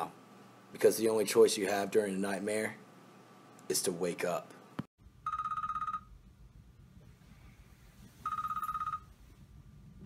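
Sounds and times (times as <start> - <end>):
electronic alarm beeping: 5.2 - 6.1, 8.2 - 9.1.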